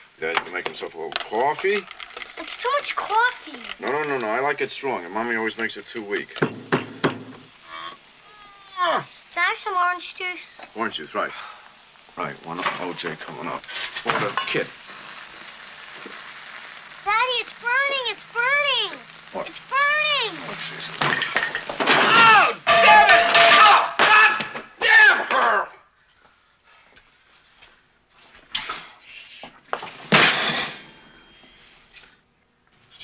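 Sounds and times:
food sizzling in a pan: 0.0s - 24.3s, 29.8s - 31.8s
man yelping: 21.9s - 25.8s
man shouting loudly: 22.0s - 25.8s.

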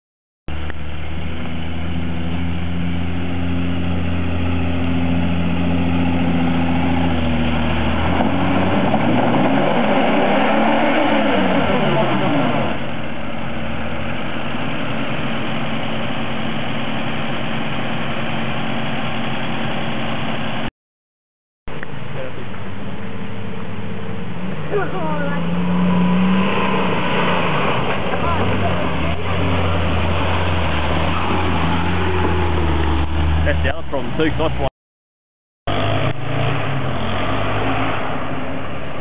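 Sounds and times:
engine idling and revving: 0.5s - 20.7s, 21.7s - 34.7s, 35.6s - 39.0s.

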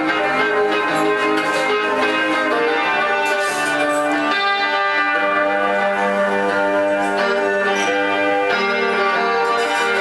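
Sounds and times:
electric guitar chords: 0.0s - 10.0s.

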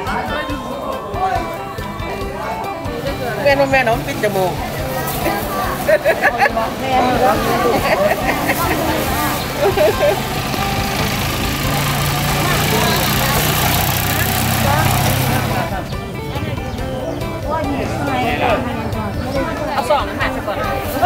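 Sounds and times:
music: 0.0s - 21.0s
people's voices: 0.0s - 21.0s.

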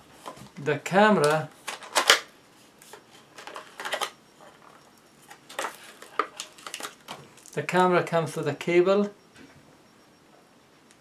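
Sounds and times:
plastic packaging clicks and crinkles: 1.2s - 7.6s.

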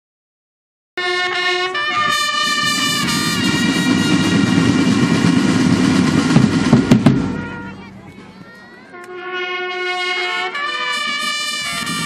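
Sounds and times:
brass chord: 1.0s - 8.1s, 8.9s - 12.0s
snare and bass drum roll: 2.1s - 8.0s.

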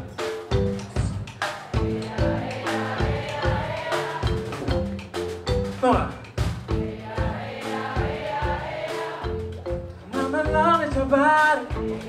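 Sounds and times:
soul band playing: 0.0s - 12.0s.

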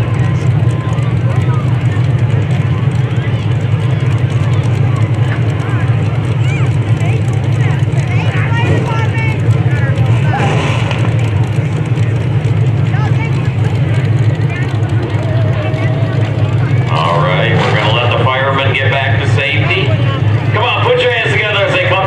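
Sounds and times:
crowd voices: 0.0s - 22.0s
race car engines revving: 0.0s - 22.0s.

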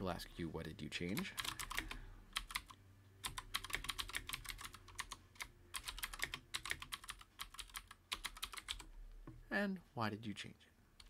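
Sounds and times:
typing on computer keyboard: 1.2s - 8.9s.

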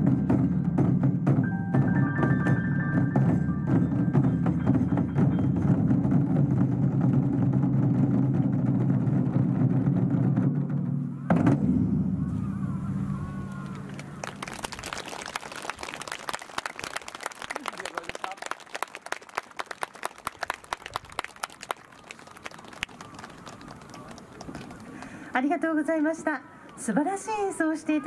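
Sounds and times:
low drum ringing: 0.0s - 13.4s
audience applause: 13.5s - 25.2s.

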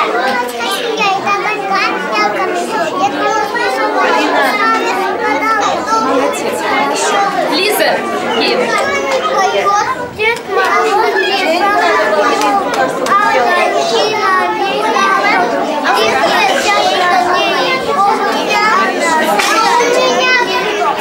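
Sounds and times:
children chattering: 0.0s - 21.0s.

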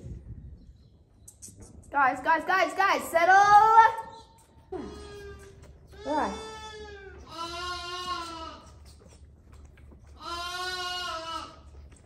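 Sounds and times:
lambs bleating: 4.8s - 8.9s, 10.1s - 11.9s.

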